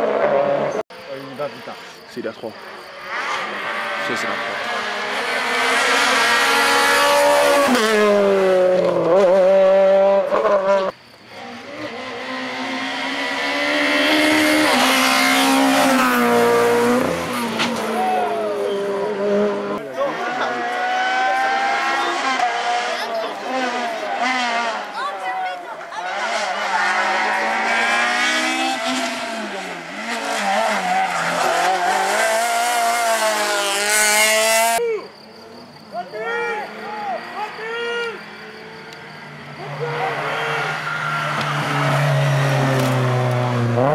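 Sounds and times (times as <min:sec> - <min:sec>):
rally car engines revving: 0:00.0 - 0:43.9
tyre squeal: 0:34.6 - 0:43.0.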